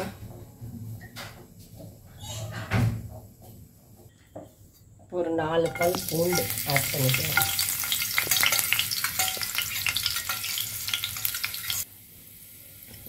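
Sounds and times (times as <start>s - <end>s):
oil sizzling in frying pan: 5.6s - 13.0s.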